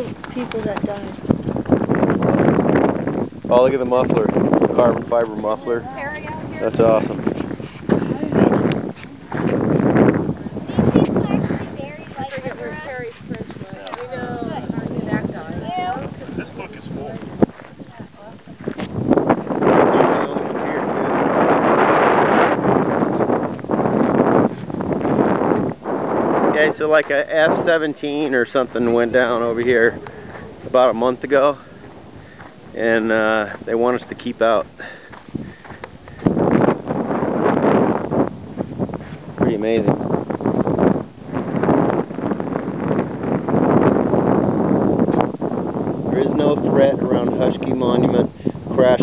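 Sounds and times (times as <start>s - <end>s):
wind buffeting microphone: 0.0s - 49.0s.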